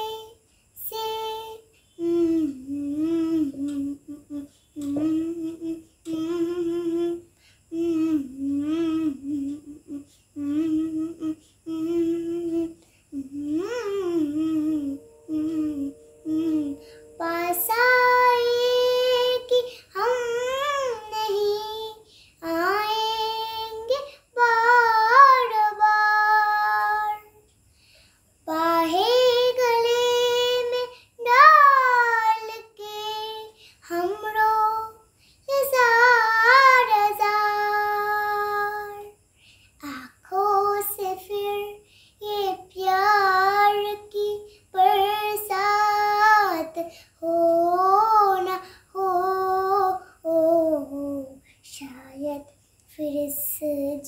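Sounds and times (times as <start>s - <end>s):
girl singing unaccompanied: 0.0s - 54.0s.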